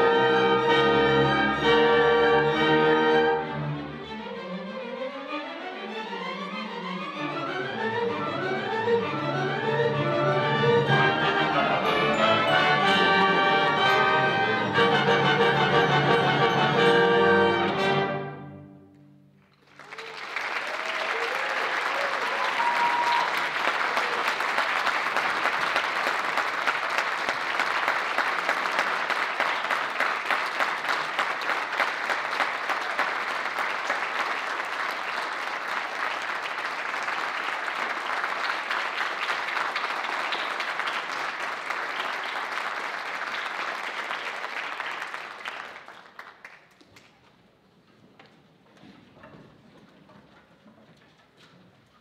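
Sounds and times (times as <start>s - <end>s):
audience applauding: 19.4s - 47.2s
crowd shouts: 22.0s - 23.4s.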